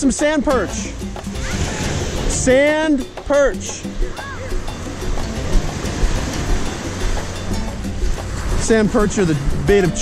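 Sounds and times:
surf washing along shore: 0:00.0 - 0:10.0.

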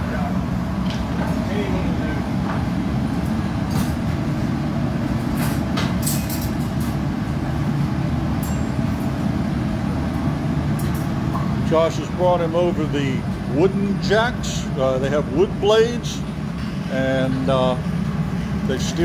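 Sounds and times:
gas furnace roar: 0:00.0 - 0:19.0.

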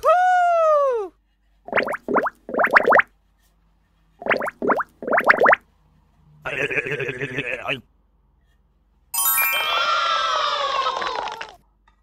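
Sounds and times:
cartoon bloop effects: 0:01.7 - 0:03.0, 0:04.2 - 0:05.6.

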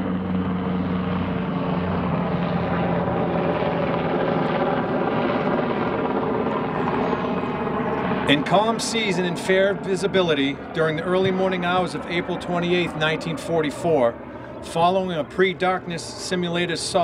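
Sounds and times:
helicopter engine drone overhead: 0:00.0 - 0:17.0.

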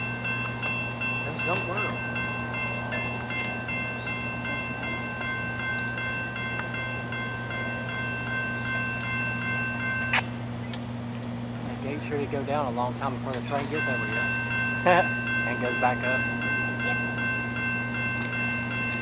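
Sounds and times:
steady high tones: 0:00.0 - 0:10.6, 0:11.8 - 0:19.0
diesel train low rumble: 0:00.0 - 0:19.0.

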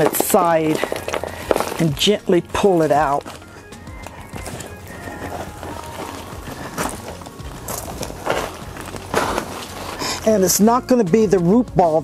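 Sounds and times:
soil scraping in plastic pot: 0:00.0 - 0:10.6
quiet background music: 0:00.0 - 0:12.0.

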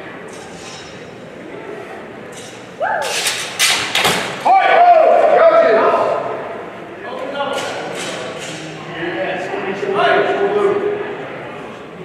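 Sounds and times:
person shouting woo: 0:02.8 - 0:03.1.

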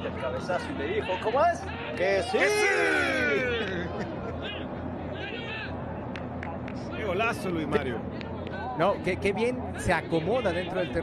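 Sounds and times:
player shouting: 0:01.8 - 0:03.9.

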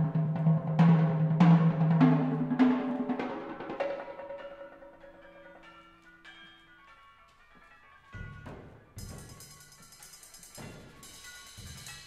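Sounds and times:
bell-like metallic notes: 0:03.4 - 0:08.4.

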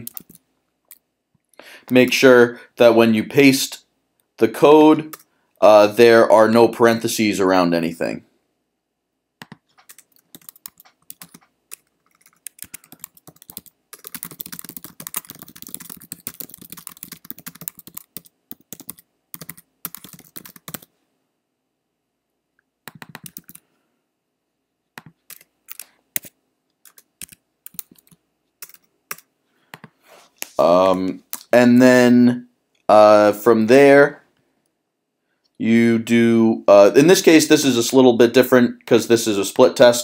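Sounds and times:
typing on computer keyboard: 0:00.0 - 0:00.4, 0:09.4 - 0:20.9, 0:22.9 - 0:23.6, 0:25.0 - 0:29.9.

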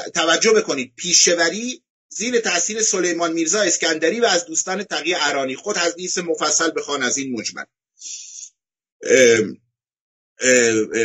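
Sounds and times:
man clearing his throat: 0:09.0 - 0:09.5.

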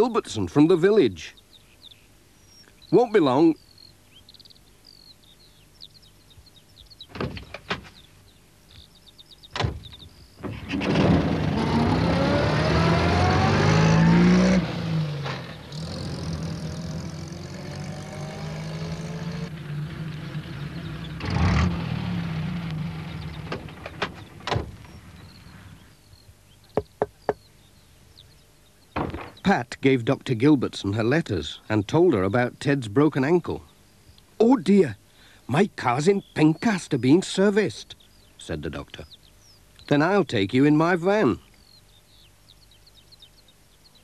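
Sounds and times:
van door shutting: 0:09.5 - 0:11.5, 0:23.3 - 0:25.3
van engine starting and revving: 0:10.4 - 0:25.8.

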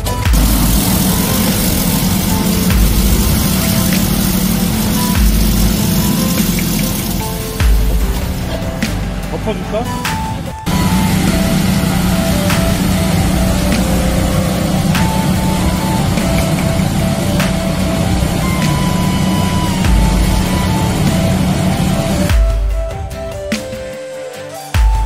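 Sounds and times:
background music: 0:00.0 - 0:25.0
pump running: 0:00.2 - 0:22.4
water jet hissing: 0:00.3 - 0:22.4.

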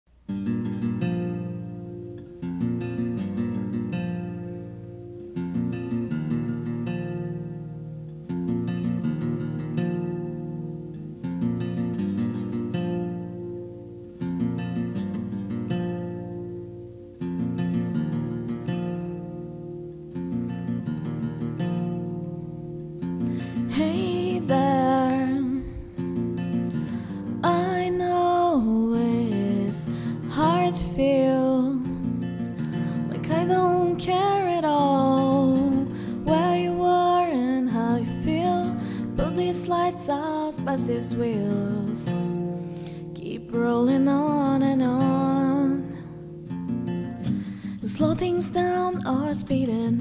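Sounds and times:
acoustic guitar strumming chords: 0:00.2 - 0:50.0
woman singing: 0:23.2 - 0:26.4, 0:27.2 - 0:46.4, 0:47.0 - 0:50.0.

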